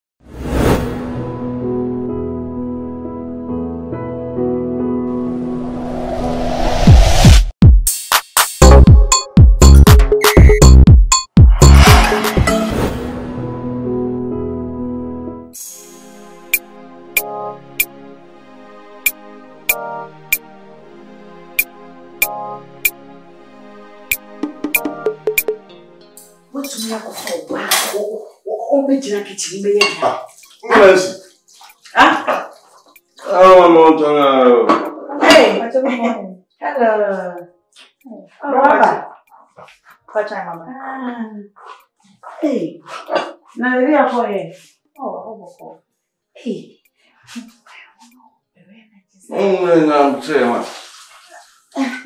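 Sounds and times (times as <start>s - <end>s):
dishes clattering in sink: 29.8s - 30.4s.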